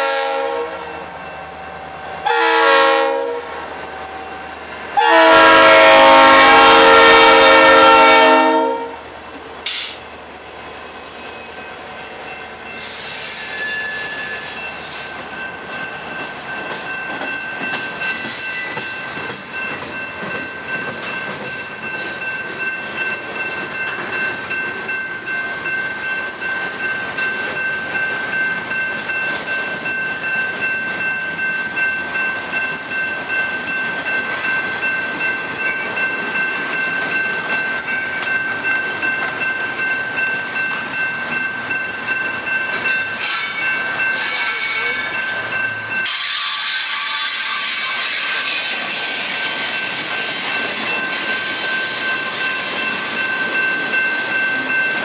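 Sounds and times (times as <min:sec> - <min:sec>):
freight train wheels rumbling: 0:00.0 - 0:55.0
high-pitched wheel squeal: 0:12.8 - 0:15.2, 0:43.2 - 0:45.4.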